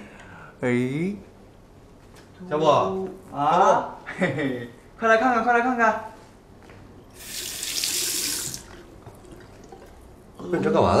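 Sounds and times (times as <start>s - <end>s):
tap water running into basin: 7.2s - 10.1s.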